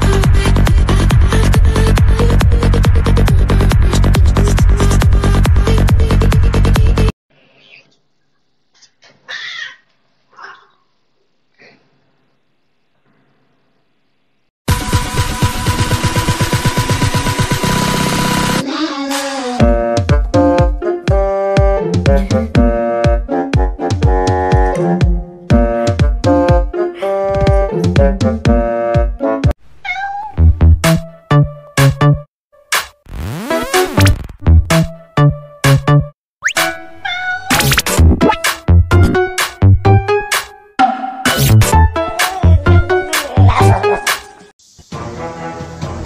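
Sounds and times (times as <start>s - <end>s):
electronic music with heavy bass: 0.0s - 7.1s, 14.7s - 18.6s, 33.1s - 36.8s, 37.5s - 44.5s
cat crying in a fight: 29.9s - 30.4s, 37.0s - 37.6s.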